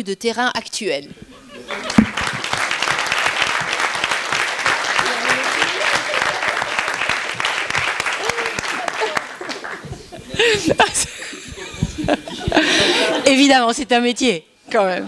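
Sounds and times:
audience applauding: 1.6s - 13.0s
voices: 5.0s - 7.4s.

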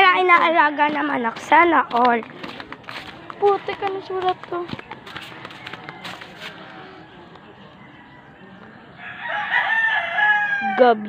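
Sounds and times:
rooster crowing: 5.5s - 11.0s.

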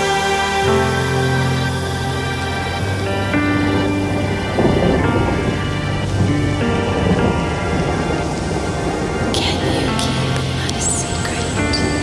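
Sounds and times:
ambient music with held notes: 0.0s - 12.0s
rumbling wash of noise: 0.0s - 12.0s.

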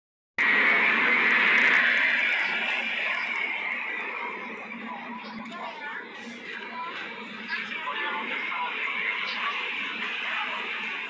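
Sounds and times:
rushing noise inside train carriage: 0.4s - 5.0s.

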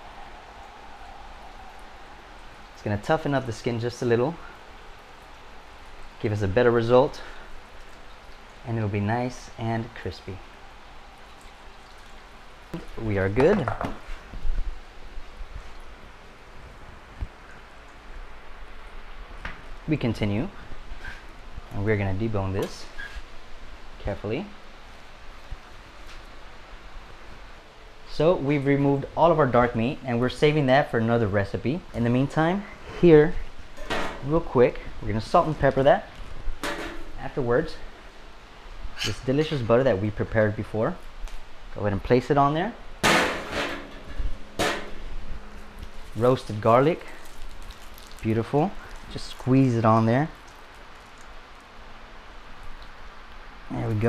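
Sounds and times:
water running and dripping: 0.0s - 16.2s, 43.0s - 54.0s
sharp percussive hits: 43.0s - 45.0s.

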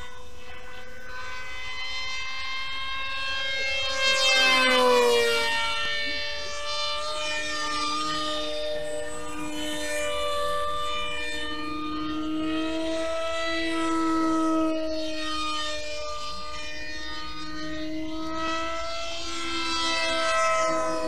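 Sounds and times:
model plane motor droning: 0.0s - 21.0s.

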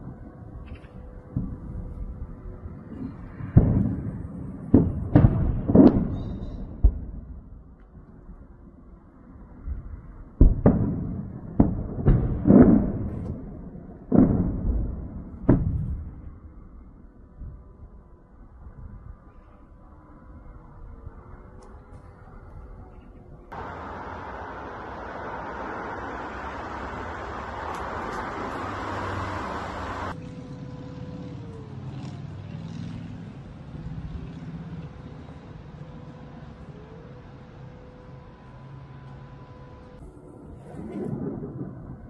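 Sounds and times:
distant explosions booming: 1.3s - 7.6s, 10.4s - 16.4s
low steady hum: 15.8s - 31.7s
rushing noise: 23.5s - 30.2s.

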